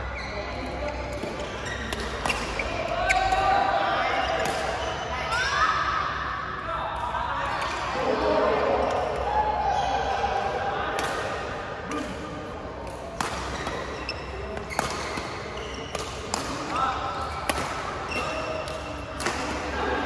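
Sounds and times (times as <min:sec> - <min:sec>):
voices in a hall: 0:00.0 - 0:20.0
rackets hitting shuttlecock: 0:01.1 - 0:03.5, 0:12.8 - 0:19.8.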